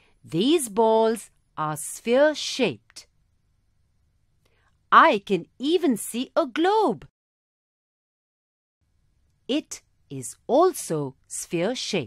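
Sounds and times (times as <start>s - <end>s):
person speaking: 0.3s - 3.0s.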